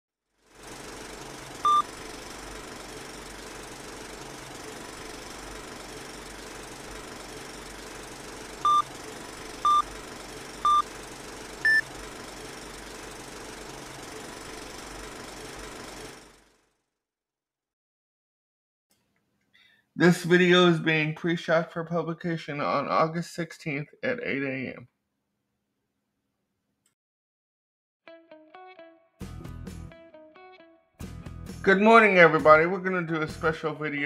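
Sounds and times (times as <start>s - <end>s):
short beeps: 1.6s - 1.9s, 8.7s - 8.9s, 9.6s - 9.8s, 11.6s - 11.8s.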